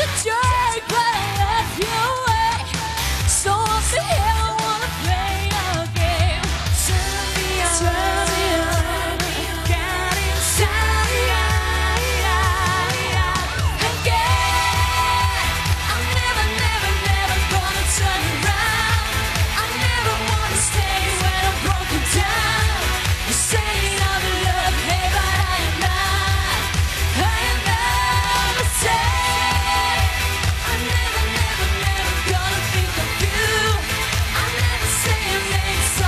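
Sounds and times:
pop-rock band playing live: 0.0s - 36.0s.

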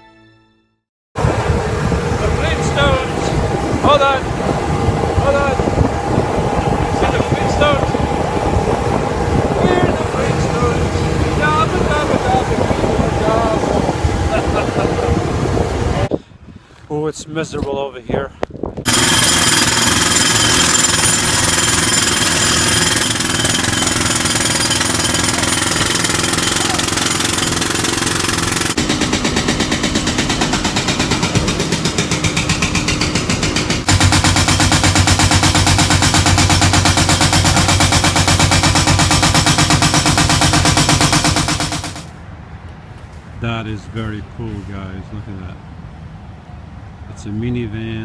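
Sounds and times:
diesel machine rattling: 1.2s - 16.1s, 18.8s - 42.2s
low hum: 1.2s - 16.2s.

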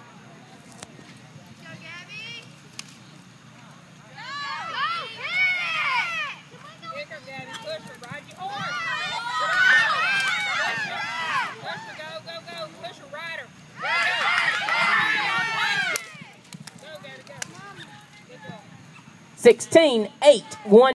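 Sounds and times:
high-pitched voices yelling and whooping: 4.2s - 6.9s, 8.4s - 12.1s, 13.8s - 16.4s.

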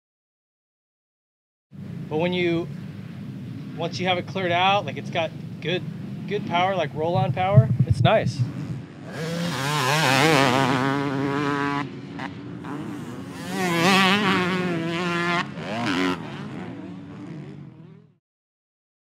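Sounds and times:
dirt bike engine revving: 5.8s - 18.2s.

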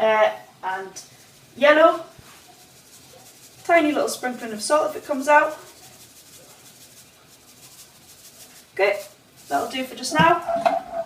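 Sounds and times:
salt shaker rasping: 0.0s - 11.0s.

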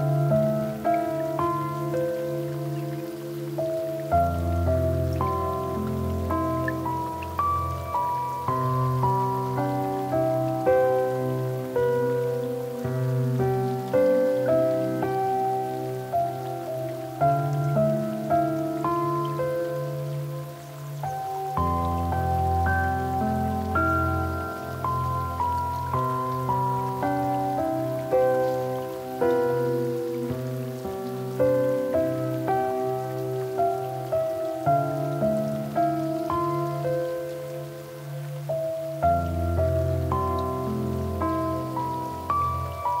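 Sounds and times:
slow solo piano music: 0.0s - 43.0s.

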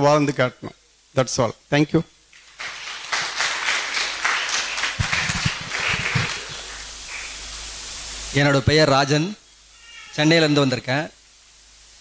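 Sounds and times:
audience applauding: 2.4s - 7.4s.

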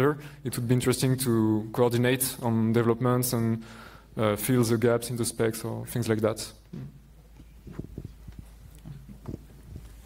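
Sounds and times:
microphone handling knocks and rubs: 6.7s - 10.0s.

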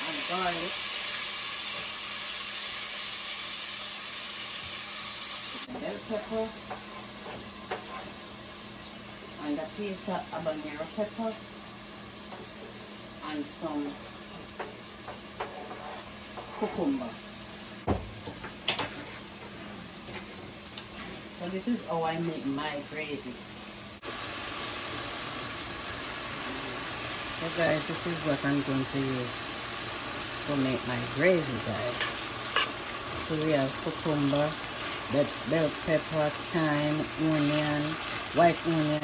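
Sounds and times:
pot cooking hiss: 0.0s - 39.0s
vegetables sizzling in oil: 0.0s - 39.0s.

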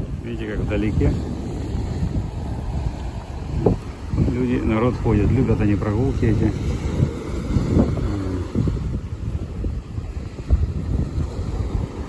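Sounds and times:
surf breaking: 0.0s - 12.0s
wind buffeting microphone: 0.0s - 12.0s.

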